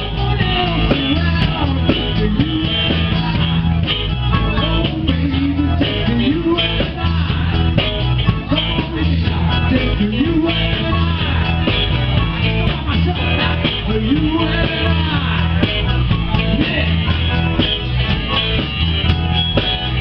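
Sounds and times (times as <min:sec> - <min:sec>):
electric guitar bending notes: 0:00.0 - 0:20.0
rock band playing: 0:00.0 - 0:20.0.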